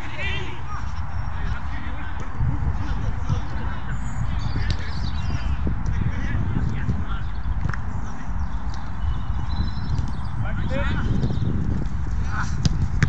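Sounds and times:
wind buffeting microphone: 0.0 - 13.0
ball being kicked: 12.4 - 13.0.

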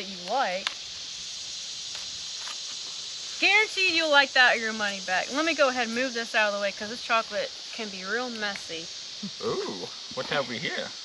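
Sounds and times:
high-pitched outdoor hiss: 0.0 - 11.0.

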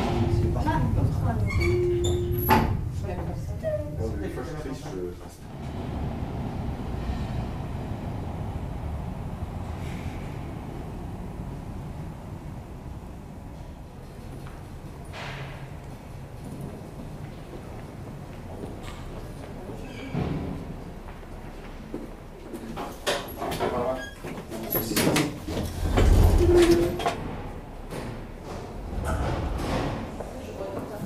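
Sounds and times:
funicular car rumbling on rails: 0.0 - 22.3, 24.5 - 31.0.

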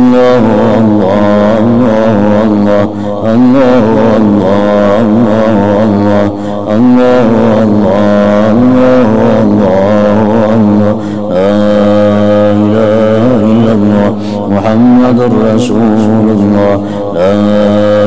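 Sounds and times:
man chanting: 0.0 - 18.0.

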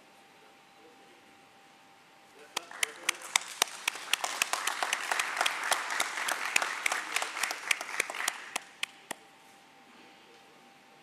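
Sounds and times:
audience applause: 2.6 - 9.0.

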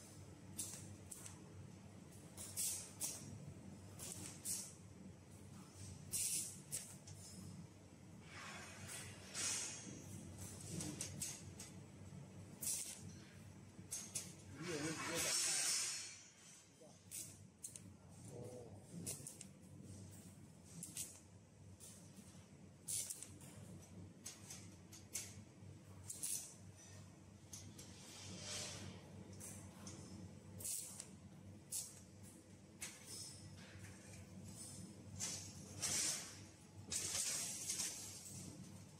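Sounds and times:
welding arc hissing: 2.4 - 3.3, 4.0 - 4.8, 6.1 - 7.0, 12.5 - 13.2, 14.6 - 16.4, 20.7 - 21.2, 22.9 - 23.3, 26.1 - 26.6, 30.6 - 31.1, 31.7 - 32.0.

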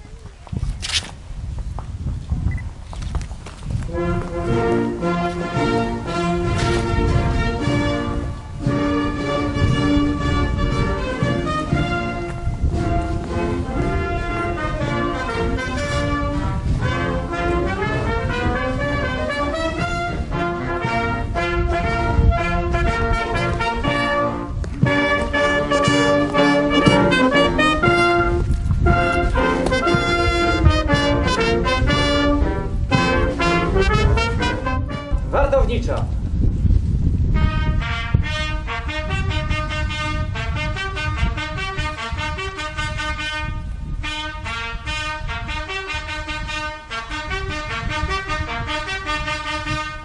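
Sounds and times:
brass band playing: 3.9 - 35.3, 37.3 - 50.0.

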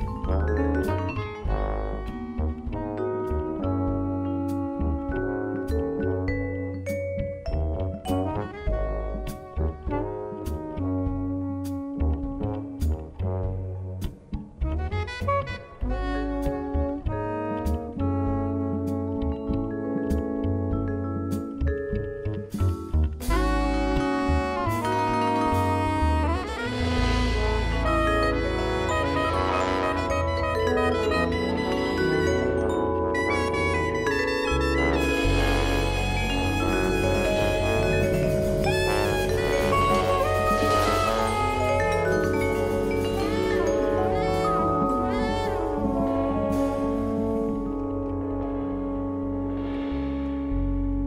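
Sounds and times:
vibraphone: 0.0 - 9.8, 27.1 - 47.7
trombone: 0.0 - 21.8, 22.5 - 51.0
drums: 0.0 - 51.0
plucked double bass: 0.0 - 51.0
soprano saxophone: 0.8 - 6.2, 8.1 - 12.9, 14.7 - 19.8, 23.2 - 51.0.

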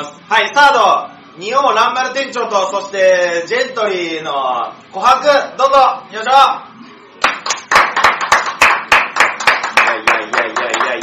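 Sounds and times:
people clapping: 7.2 - 11.0.

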